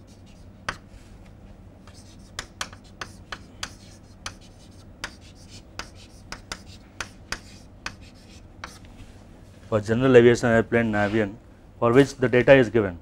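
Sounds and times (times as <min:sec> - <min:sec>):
chalk tapping and scraping: 0:00.0 - 0:00.9, 0:01.8 - 0:09.0
faint low hum: 0:00.0 - 0:13.0.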